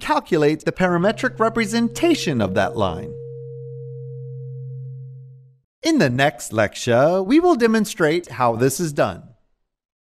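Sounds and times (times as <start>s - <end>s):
electronic hum: 0.8s - 5.6s.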